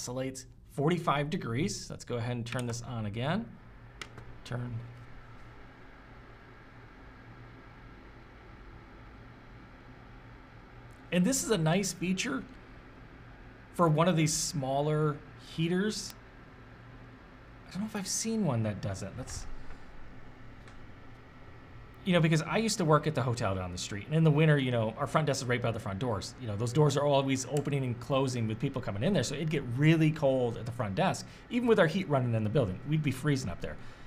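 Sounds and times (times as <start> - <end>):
heater fan whooshing with hum: 0.0 - 34.0.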